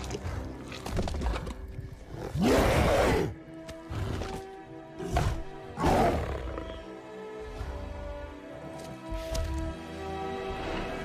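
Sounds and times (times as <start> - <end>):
orchestral music: 0.0 - 11.0.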